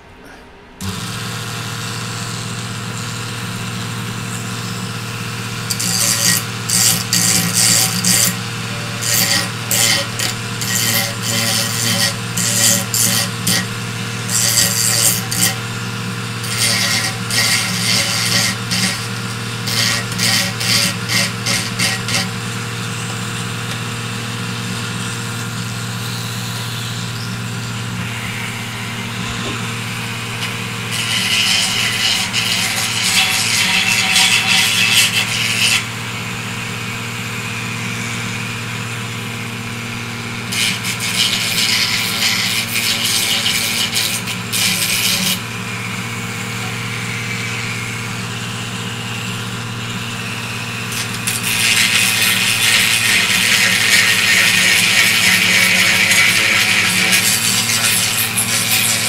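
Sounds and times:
rotary tool humming: 0:00.8 - 0:59.0.

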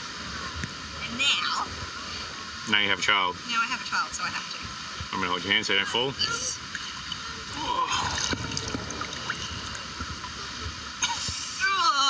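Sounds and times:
water splashing around wading legs: 0:06.6 - 0:11.0.

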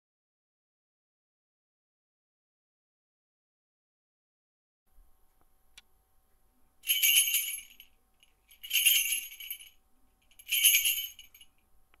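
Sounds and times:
small metal bells jingling: 0:06.8 - 0:11.6.

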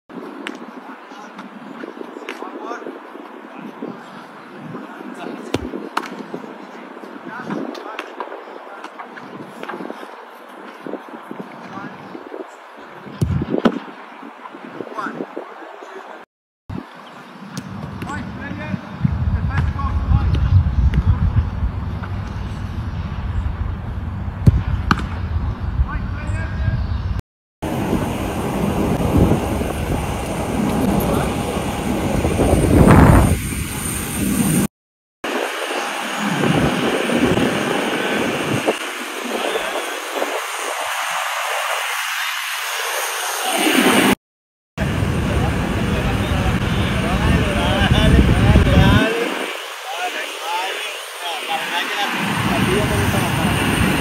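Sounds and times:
outdoor background noise: 0:00.1 - 0:44.2, 0:44.8 - 0:54.0
people's voices: 0:00.5 - 0:13.2, 0:30.8 - 0:31.8, 0:44.8 - 0:54.0.

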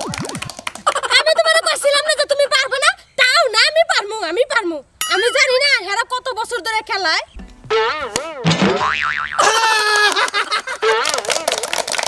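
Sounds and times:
cartoon boing sound effect: 0:07.7 - 0:09.9.

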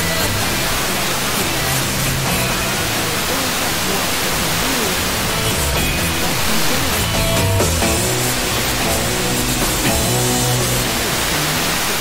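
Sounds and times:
distant radio music: 0:00.0 - 0:12.0
radio hiss: 0:00.0 - 0:12.0.

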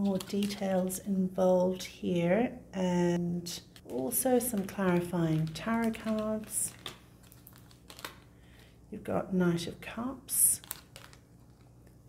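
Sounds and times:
cards clicking and tapping: 0:03.8 - 0:08.2.

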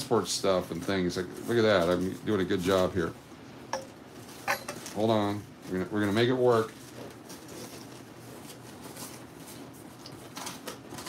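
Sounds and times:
banknotes rustling: 0:00.4 - 0:03.2, 0:04.2 - 0:11.0
cardboard crinkling: 0:04.2 - 0:11.0.

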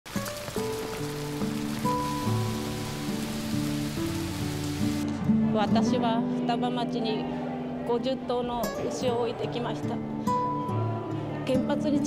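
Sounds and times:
rain falling into puddle: 0:00.0 - 0:05.1
slow music with held notes: 0:00.1 - 0:12.0.

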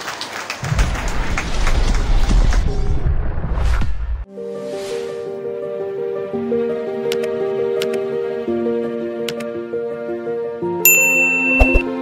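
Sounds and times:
soft music with held notes: 0:04.3 - 0:12.0
bright ding: 0:10.9 - 0:12.0.

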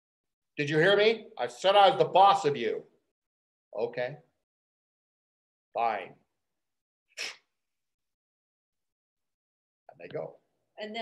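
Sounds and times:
person sneezing: 0:07.1 - 0:07.6.

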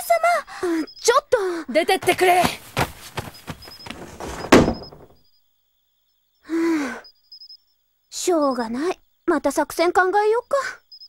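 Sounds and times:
rustling movement: 0:02.0 - 0:05.2
door shutting thud: 0:03.2 - 0:05.2.

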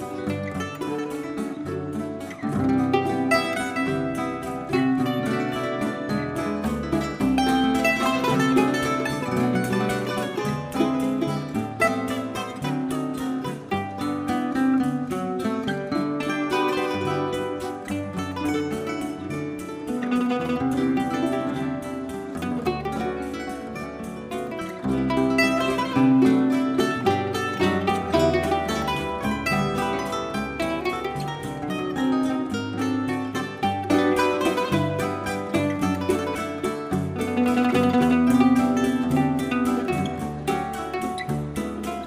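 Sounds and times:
fast plucked mandolin melody: 0:00.0 - 0:42.0
plucked string accompaniment: 0:00.0 - 0:42.0.

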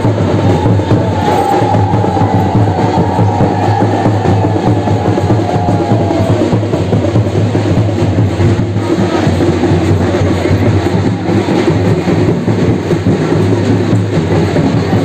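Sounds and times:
procession music with drumming: 0:00.0 - 0:15.0.

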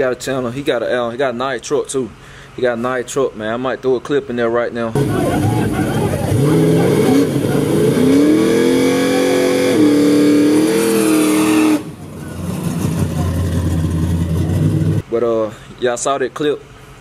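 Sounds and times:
low engine rumble: 0:00.0 - 0:10.5, 0:11.4 - 0:17.0
engine revving hard: 0:05.0 - 0:15.0.

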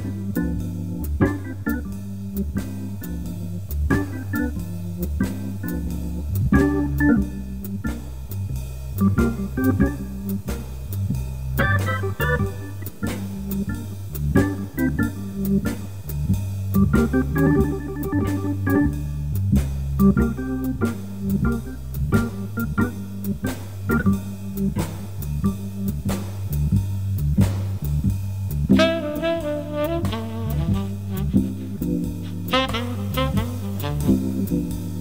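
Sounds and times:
drums keeping time: 0:00.0 - 0:35.0
organ chords and runs: 0:00.0 - 0:35.0
walking bass line: 0:00.0 - 0:35.0.

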